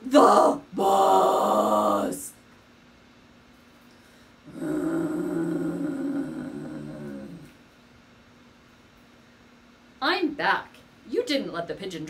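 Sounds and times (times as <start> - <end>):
person groaning: 0.0 - 2.2, 4.5 - 7.6.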